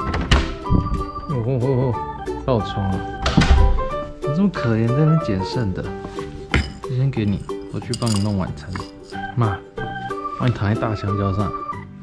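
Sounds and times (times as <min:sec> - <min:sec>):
background music: 0:00.0 - 0:12.0
ceramic bowls clinking: 0:06.2 - 0:09.4
dry kibble rattling: 0:06.6 - 0:09.2
person speaking: 0:06.6 - 0:09.6.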